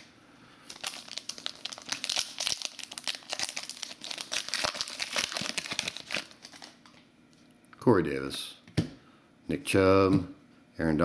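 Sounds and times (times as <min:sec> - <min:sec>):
wrapper crinkling and tearing: 0:00.7 - 0:07.0.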